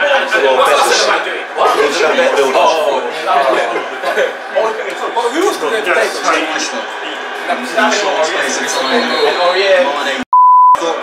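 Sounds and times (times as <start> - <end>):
men chatting: 0.0 - 11.0
high-pitched censor bleep: 10.3 - 10.8.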